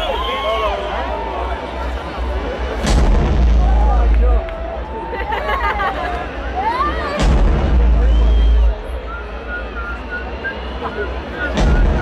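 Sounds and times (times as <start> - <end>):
crowd cheering and whistling: 0.0 - 12.0
deep booming bass hit: 2.8 - 4.5, 7.2 - 8.8, 11.6 - 12.0.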